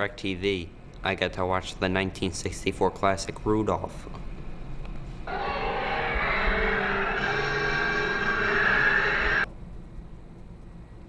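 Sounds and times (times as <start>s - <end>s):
television soundtrack: 4.4s - 9.5s.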